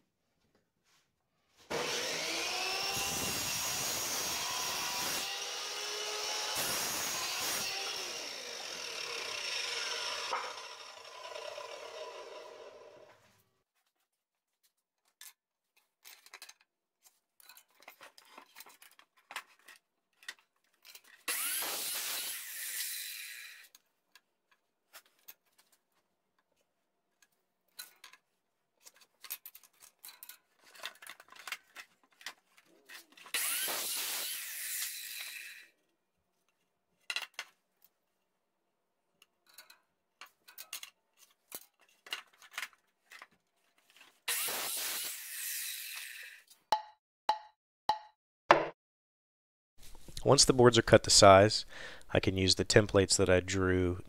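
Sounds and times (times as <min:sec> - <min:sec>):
saw motor whine winding down: 0:01.7 - 0:13.1, 0:33.4 - 0:35.6
miter saw cutting wood: 0:01.7 - 0:13.2, 0:21.3 - 0:23.7, 0:33.3 - 0:35.7, 0:44.3 - 0:46.5.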